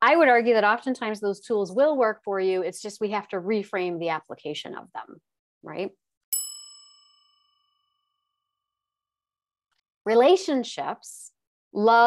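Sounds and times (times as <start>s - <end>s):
bright bell-like ding: 6.3s - 8.1s.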